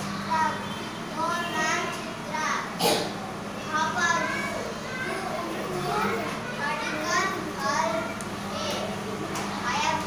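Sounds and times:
children talking: 0.0 - 10.0.

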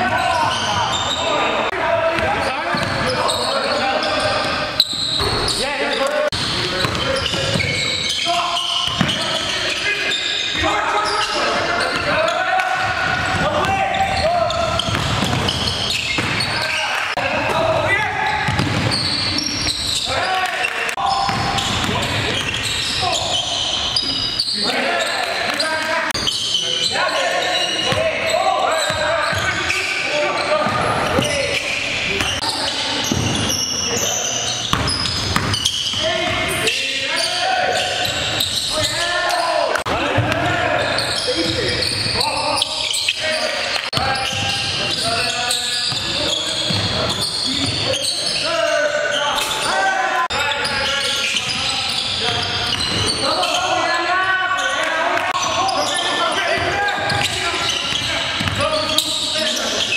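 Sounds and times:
players shouting: 7.0 - 59.9
basketball bouncing on wooden floor: 14.7 - 16.4, 18.5 - 19.1, 34.7 - 35.8, 56.6 - 58.6.

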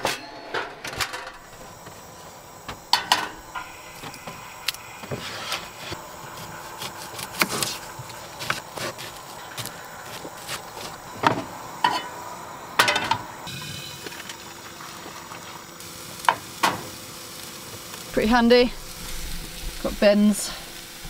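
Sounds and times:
steady sizzle: 1.3 - 21.0
pans and utensils clattering: 2.9 - 3.7, 11.2 - 12.2, 12.8 - 14.2.

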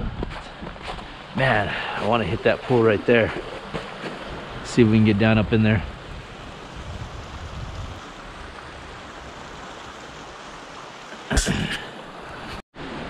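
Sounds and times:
wind rumble on microphone: 0.0 - 1.0, 4.4 - 9.2
river water rushing: 5.9 - 13.0.

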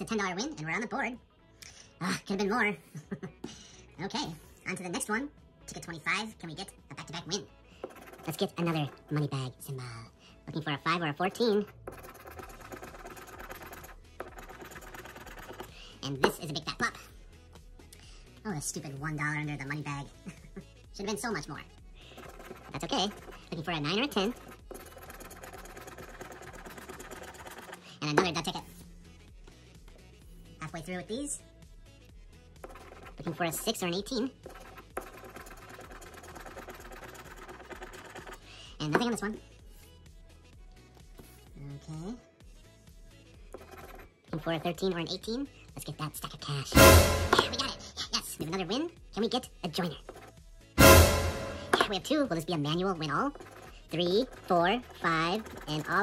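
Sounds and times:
scratching a lottery ticket: 7.7 - 9.3, 10.9 - 16.5, 22.0 - 28.5, 32.6 - 39.4, 43.4 - 44.9, 49.7 - 50.4, 51.8 - 56.0.

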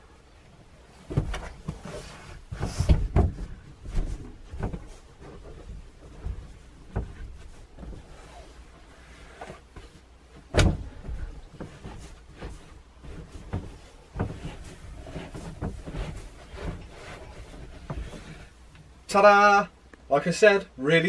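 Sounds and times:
seat cushions thumping: 1.1 - 8.3, 9.4 - 18.5.

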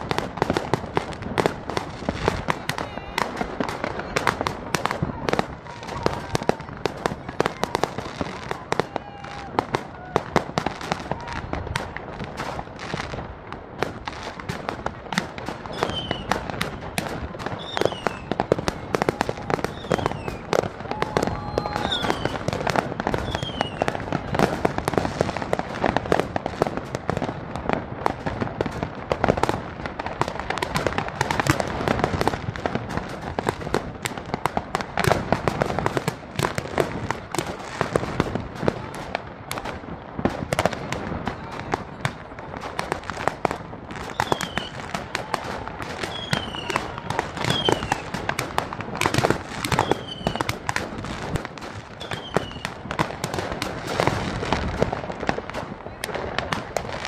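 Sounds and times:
fireworks bangs and crackling: 0.0 - 57.0
falling firework whistles: 15.7 - 16.9, 17.5 - 18.4, 19.1 - 24.0, 44.0 - 44.8, 46.0 - 48.2, 49.6 - 50.6, 52.0 - 52.8.

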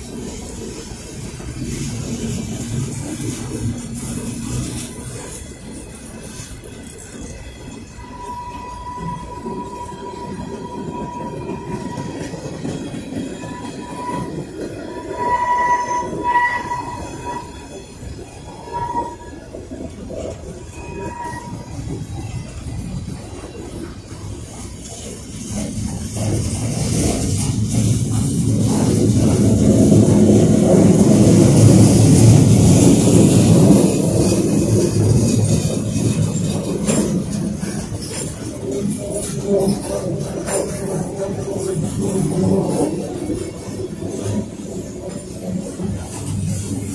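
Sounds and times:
freight train wheels rumbling on rail: 0.0 - 46.9
high wheel squeal: 3.0 - 23.5.

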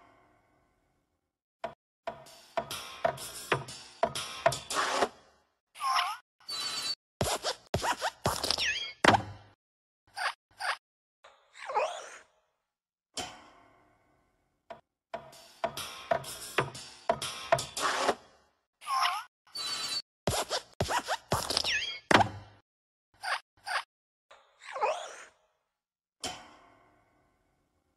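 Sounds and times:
squeak sliding in pitch: 6.5 - 7.0, 19.5 - 22.1.

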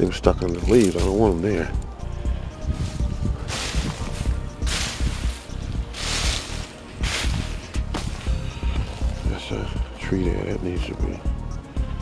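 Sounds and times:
faint background music: 0.0 - 12.0
footsteps crunching through dry leaves: 0.6 - 1.7, 2.3 - 9.7.

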